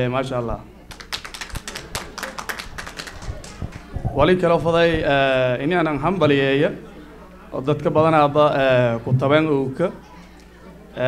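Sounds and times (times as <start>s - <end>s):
small audience clapping: 0.9s - 4.1s.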